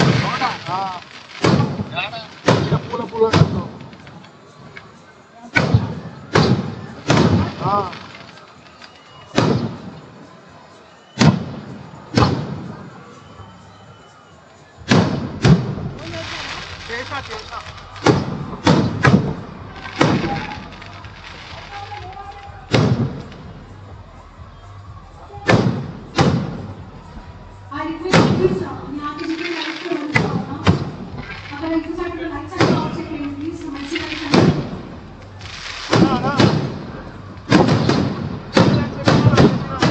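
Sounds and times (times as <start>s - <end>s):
firework shells bursting: 0.0s - 5.0s, 5.6s - 10.0s, 14.8s - 23.5s, 28.1s - 39.9s
people's voices: 0.0s - 39.9s.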